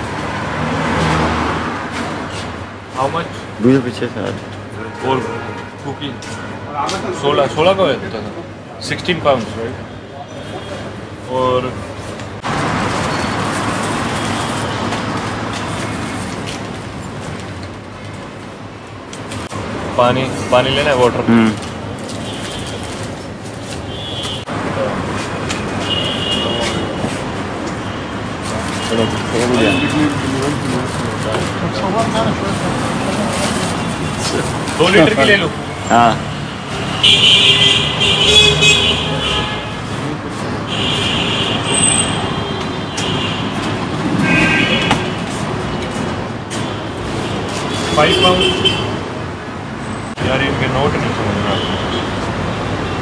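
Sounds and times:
motor vehicle passing: 0:00.0 - 0:02.7
street noise: 0:00.0 - 0:53.0.

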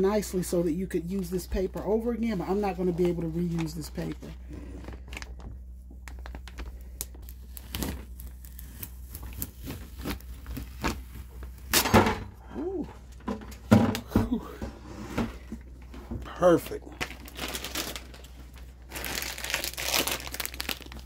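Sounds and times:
paper crackle: 0:00.4 - 0:11.8, 0:16.5 - 0:21.0
transfer paper peeling and crinkling: 0:01.0 - 0:11.8, 0:16.5 - 0:21.0.

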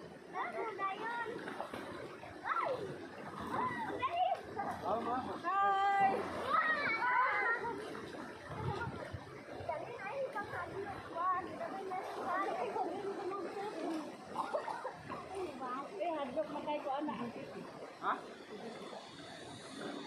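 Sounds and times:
people chattering and calling out: 0:00.0 - 0:20.0.

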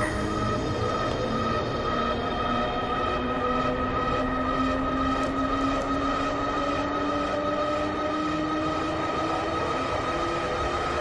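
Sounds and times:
loud droning hum: 0:00.0 - 0:11.0.

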